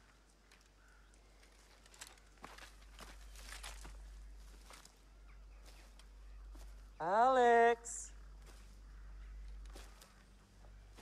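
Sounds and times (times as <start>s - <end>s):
twigs crackling and snapping: 0.0s - 6.8s, 8.3s - 10.3s
footsteps through undergrowth: 0.0s - 7.0s, 8.1s - 11.0s
low steady rumble: 8.1s - 11.0s.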